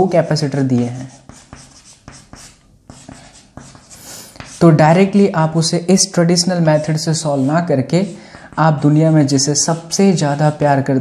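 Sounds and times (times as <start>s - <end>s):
chalk tapping and scraping: 0.0s - 5.3s, 6.3s - 10.7s.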